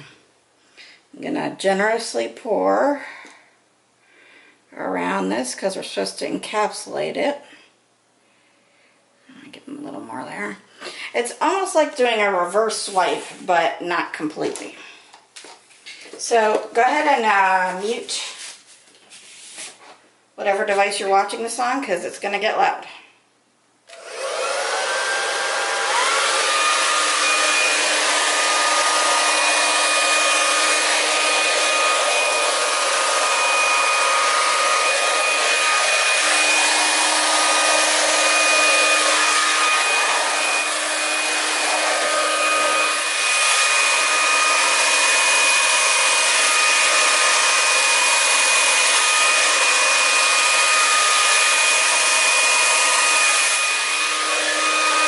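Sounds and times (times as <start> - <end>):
hair dryer whining: 11.2 - 14.6, 15.9 - 18.5, 23.9 - 55.0.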